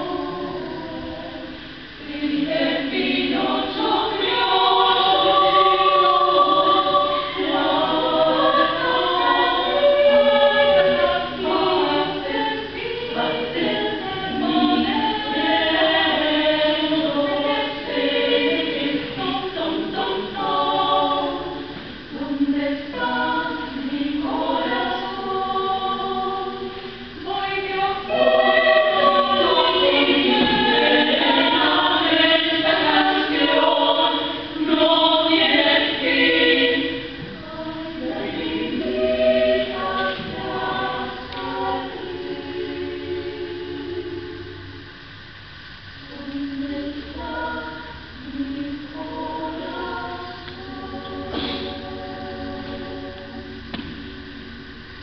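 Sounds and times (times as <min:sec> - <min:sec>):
women's choir singing: 0:00.0 - 0:45.2, 0:45.9 - 0:55.0.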